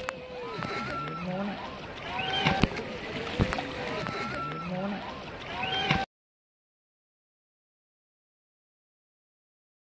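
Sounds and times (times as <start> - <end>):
water sloshing: 0.0 - 6.0
people talking and calling out: 0.0 - 6.1.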